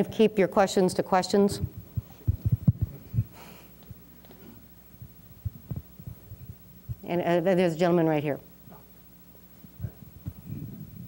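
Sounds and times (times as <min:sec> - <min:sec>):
microphone handling thumps: 0:01.5 - 0:04.0, 0:05.0 - 0:07.1, 0:09.6 - 0:11.0.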